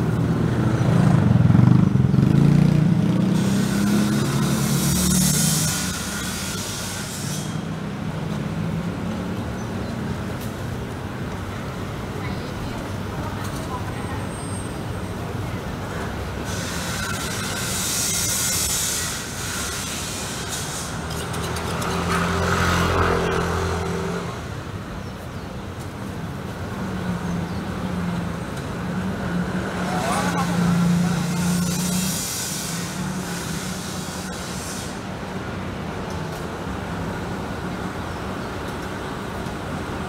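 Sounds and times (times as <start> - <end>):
steady traffic background: 0.0 - 40.0
vehicles passing close by: 0.0 - 40.0
short high hiss: 31.2 - 35.2.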